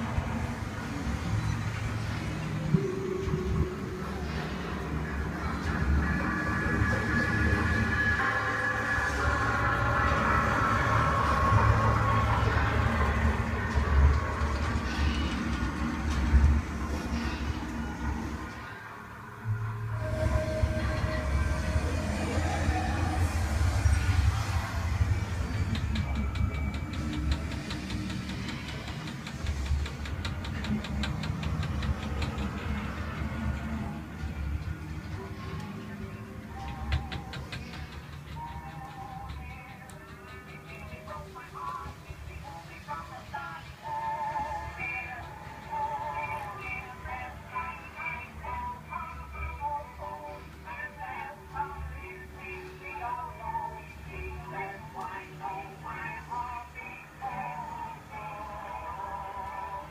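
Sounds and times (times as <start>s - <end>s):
music: 0.0s - 59.9s
loud low rumble: 19.4s - 38.5s.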